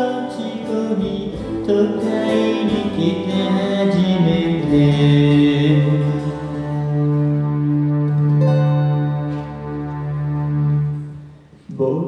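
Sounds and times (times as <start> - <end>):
live acoustic band music: 0.0 - 12.0.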